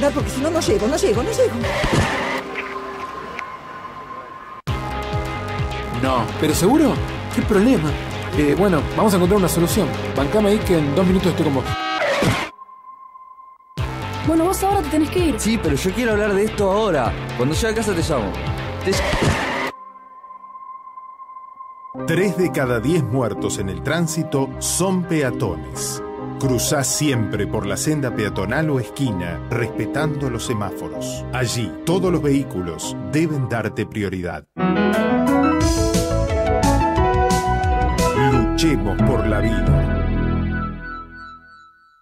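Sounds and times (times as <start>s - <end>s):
street traffic rush: 0.0s - 4.7s.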